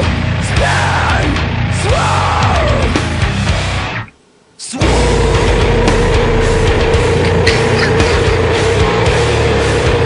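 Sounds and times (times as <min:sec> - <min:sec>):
heavy metal music: 0:00.0 - 0:10.0.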